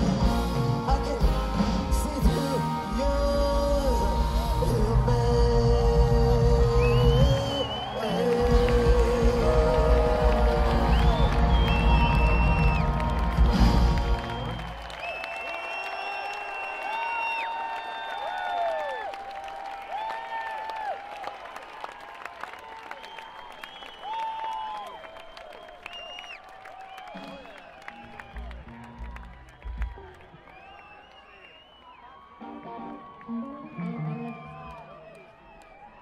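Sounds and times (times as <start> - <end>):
live rock band playing: 0.0 - 14.7, 32.4 - 34.6
crowd cheering and whistling: 0.0 - 36.0.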